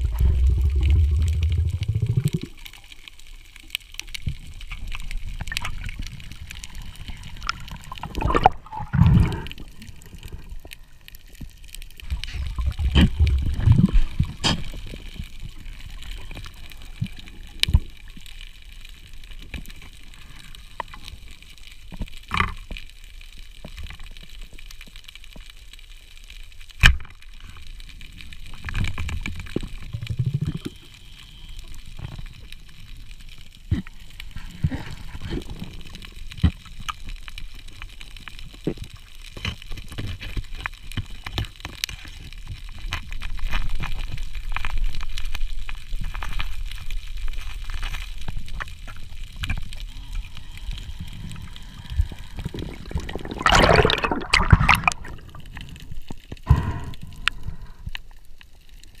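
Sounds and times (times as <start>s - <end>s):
muffled underwater movement: 0.0s - 59.0s
rush of water: 49.5s - 55.7s
underwater clicks and knocks: 52.6s - 55.7s.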